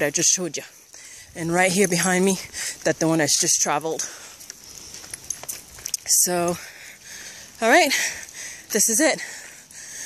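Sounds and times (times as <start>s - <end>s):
footsteps on dirt trail: 0.0s - 10.0s.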